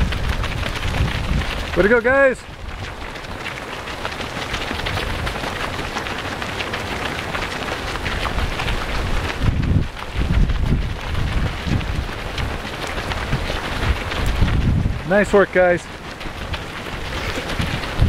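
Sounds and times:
runners' footfalls on gravel: 0:00.0 - 0:18.0
wind buffeting microphone: 0:00.0 - 0:18.0.

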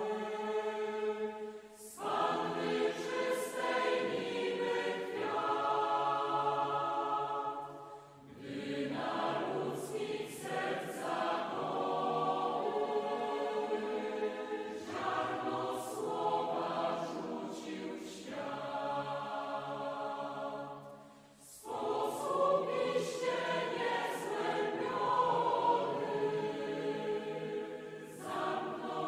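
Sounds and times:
choir singing sustained notes: 0:00.0 - 0:29.0.

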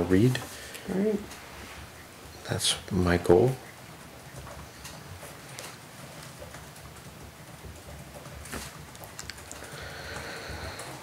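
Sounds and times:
pens and papers tapping and rustling: 0:03.9 - 0:11.0.

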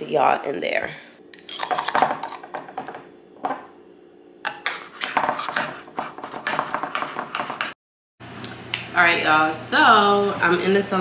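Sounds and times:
kitchenware clinking on stone: 0:01.4 - 0:03.6.

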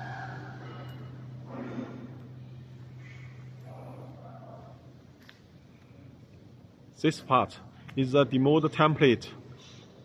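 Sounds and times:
factory machinery electric hum: 0:00.0 - 0:10.0.

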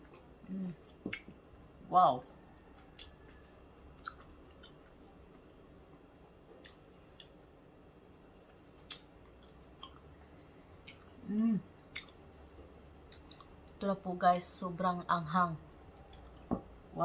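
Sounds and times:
faint chewing: 0:02.2 - 0:05.6, 0:06.4 - 0:07.5, 0:08.2 - 0:13.8
soft mouth clicks: 0:08.9 - 0:09.1, 0:11.9 - 0:12.2.

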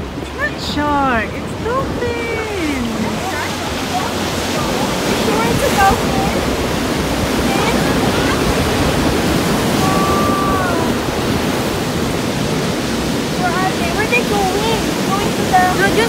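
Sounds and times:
faint voices: 0:00.0 - 0:11.6
surf breaking on rocky shore: 0:00.0 - 0:16.0.

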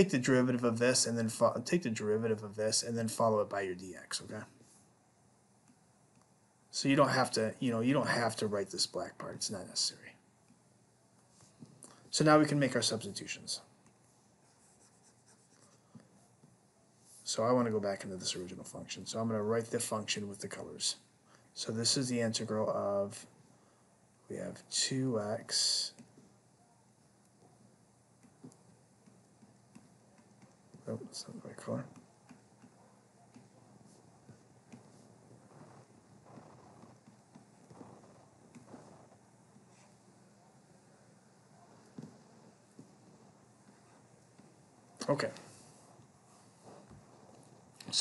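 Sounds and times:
stylus scratching on touchscreen: 0:12.4 - 0:18.6, 0:25.6 - 0:48.0.

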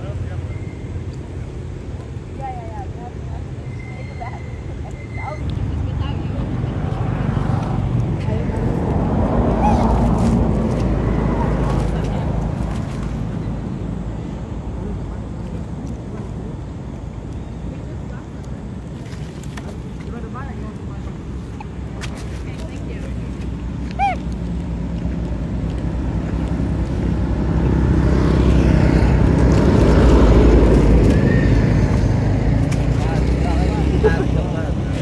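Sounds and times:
vehicle engine rumbling: 0:00.0 - 0:35.0.

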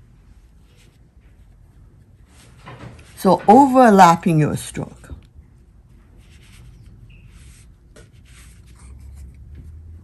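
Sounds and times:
brush swishing on paper: 0:00.0 - 0:03.7, 0:05.6 - 0:10.0.

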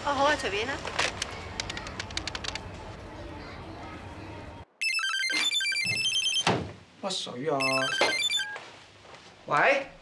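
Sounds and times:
phone ringtone electronic melody: 0:04.8 - 0:06.5, 0:07.6 - 0:08.6.

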